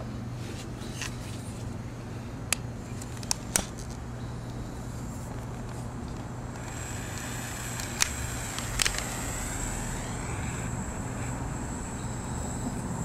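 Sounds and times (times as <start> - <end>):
steady low hum: 0.0 - 13.0
torch flame hissing: 6.5 - 13.0.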